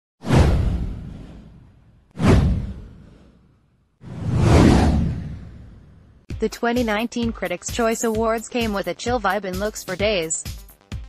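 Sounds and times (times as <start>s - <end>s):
whoosh with low rumble: 0.2s - 6.3s.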